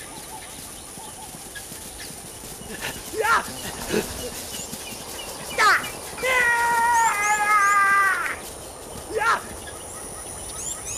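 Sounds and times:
faint high bird chirps: 0.0 - 10.9.

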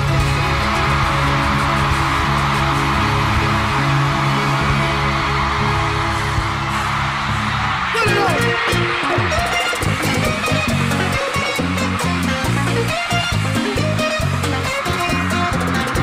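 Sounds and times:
band playing guitars and bass: 0.0 - 16.0.

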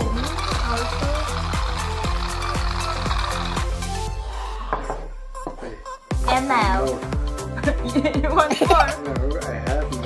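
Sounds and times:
background music with beat and bass: 0.0 - 10.0.

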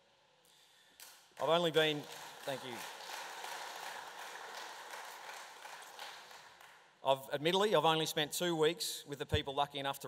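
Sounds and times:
audience applause: 1.4 - 6.8.

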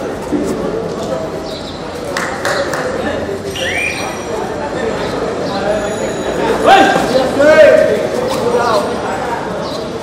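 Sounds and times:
sharp high-pitched tone: 3.5 - 4.4
indistinct voices calling: 3.5 - 8.1.

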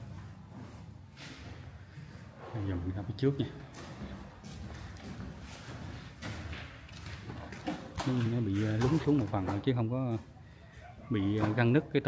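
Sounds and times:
footsteps on concrete floor: 0.0 - 2.7, 3.3 - 11.8.

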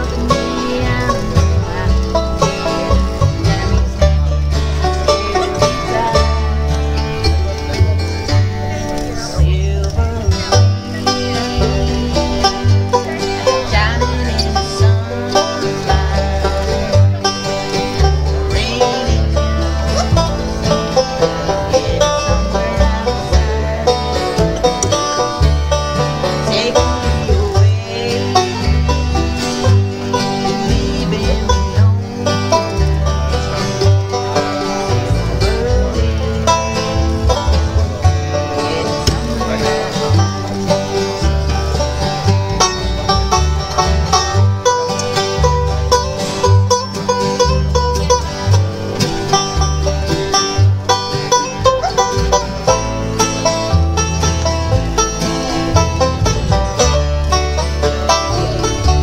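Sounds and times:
acoustic guitars: 0.0 - 59.0
banjo: 0.0 - 59.0
upright bass thumping: 0.0 - 59.0.

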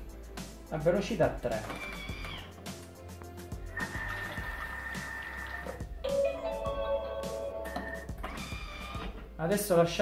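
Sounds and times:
background music held notes: 0.0 - 10.0.

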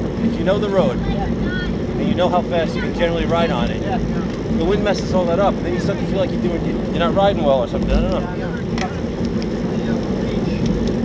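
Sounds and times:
road and tyre noise: 0.0 - 11.0.

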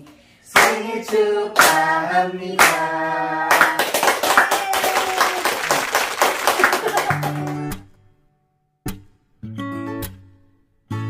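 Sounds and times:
people clapping: 0.6 - 2.0, 2.6 - 8.0.

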